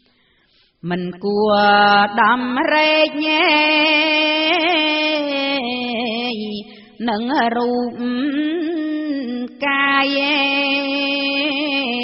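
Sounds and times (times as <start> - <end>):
woman chanting solo verse: 0.8 - 12.0.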